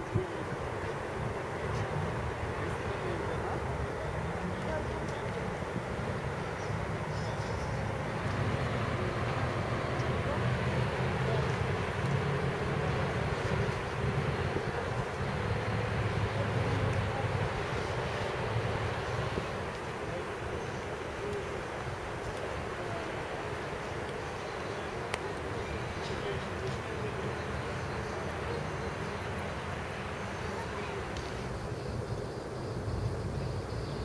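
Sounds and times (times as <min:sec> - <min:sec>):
distant city traffic hum: 0:00.0 - 0:34.0.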